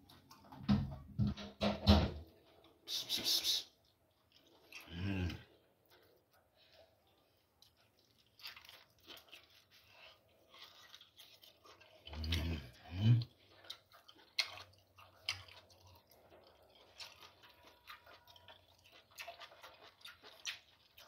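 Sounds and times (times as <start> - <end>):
short vocal sounds: 2.9 - 3.7, 4.8 - 5.5
person chewing meat: 3.9 - 21.0.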